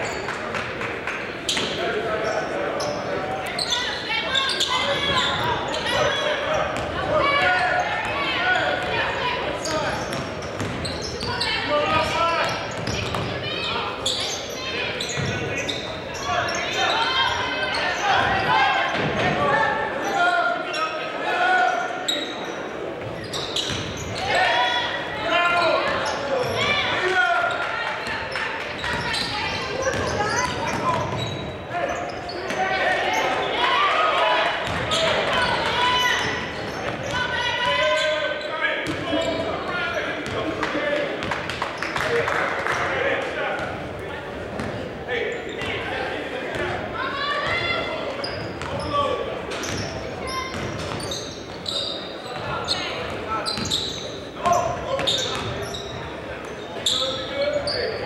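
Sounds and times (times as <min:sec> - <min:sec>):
players and spectators chattering: 0:00.0 - 0:58.0.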